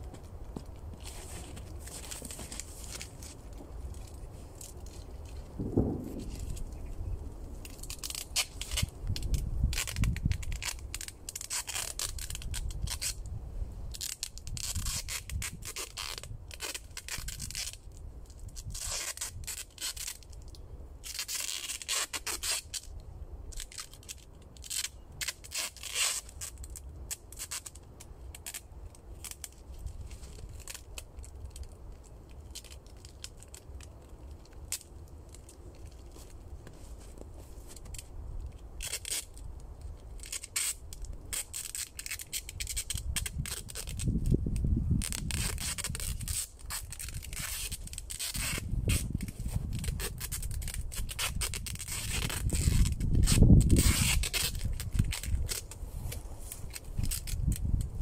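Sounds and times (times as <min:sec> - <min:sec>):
adhesive tape pulled off roll: 0:00.9 - 0:06.9, 0:07.5 - 0:58.0.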